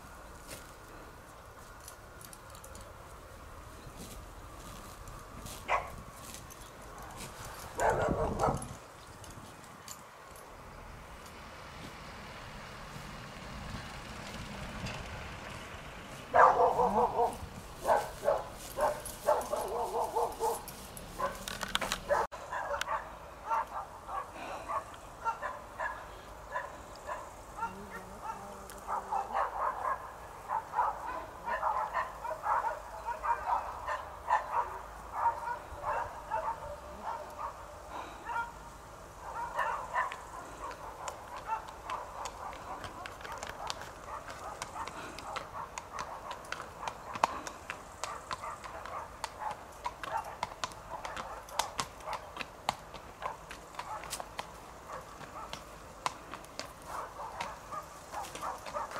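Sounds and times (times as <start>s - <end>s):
dog barking: 5.7s - 6.0s, 7.8s - 8.7s, 16.3s - 20.6s, 21.2s - 21.4s, 22.1s - 37.6s, 38.2s - 38.6s, 39.2s - 47.2s, 48.1s - 52.3s, 53.2s - 54.2s, 54.9s - 55.6s, 56.9s - 58.9s.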